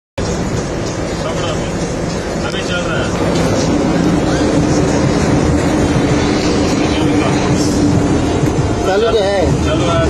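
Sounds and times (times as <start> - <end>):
crane engine running: 0.2 - 10.0
road noise inside cab: 0.2 - 10.0.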